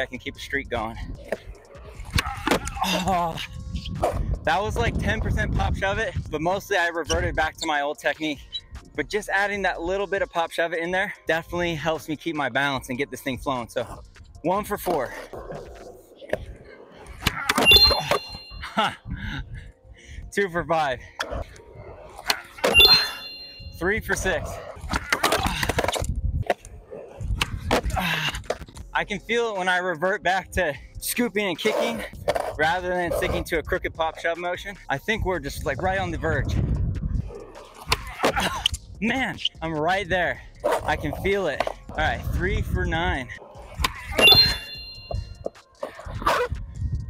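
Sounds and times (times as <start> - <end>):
skateboard wheels rolling on concrete: 0.0 - 8.2, 11.6 - 18.2, 21.1 - 29.8, 31.3 - 47.0
brief ringing tone: 17.6 - 18.7, 22.7 - 23.8, 44.2 - 45.3.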